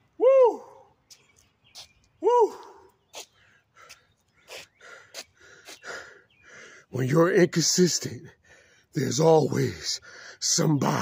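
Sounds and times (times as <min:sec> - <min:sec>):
man gasping breathily: 0:02.4 - 0:06.9, 0:08.3 - 0:08.9, 0:10.0 - 0:10.4.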